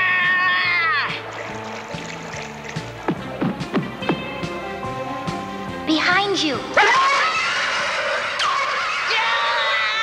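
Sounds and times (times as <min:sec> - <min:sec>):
orchestral background music: 0:01.0 - 0:08.5
high wailing cry: 0:06.7 - 0:10.0.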